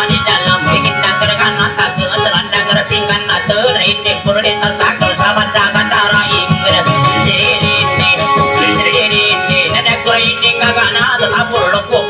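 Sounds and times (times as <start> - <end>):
guitar plucked and strummed: 0.1 - 3.0, 6.4 - 10.5.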